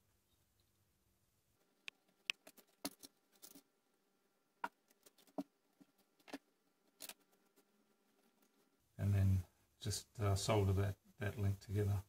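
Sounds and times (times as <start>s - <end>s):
hands tapping wire on wood: 4.6s - 7.7s.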